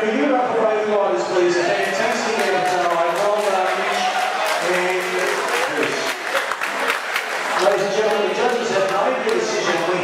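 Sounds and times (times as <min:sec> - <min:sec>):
crowd applauding: 0:01.8 - 0:10.0.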